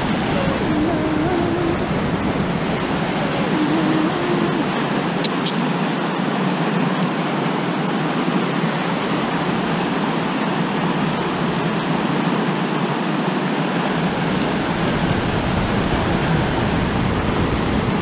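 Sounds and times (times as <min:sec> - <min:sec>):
water roaring through rapids: 0:00.0 - 0:18.0.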